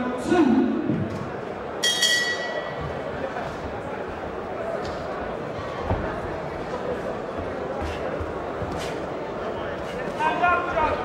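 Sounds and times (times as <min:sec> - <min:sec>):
boxing ring bell ringing: 0:01.8 - 0:02.7.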